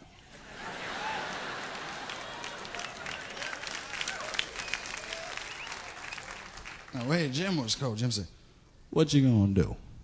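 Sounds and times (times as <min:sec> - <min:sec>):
audience applauding: 0:00.4 - 0:07.7.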